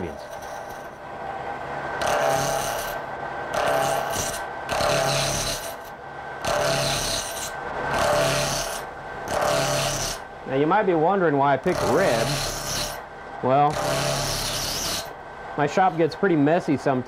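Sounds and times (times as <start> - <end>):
lathe tool cutting plastic: 2.0 - 10.3, 11.6 - 13.0, 13.6 - 15.1.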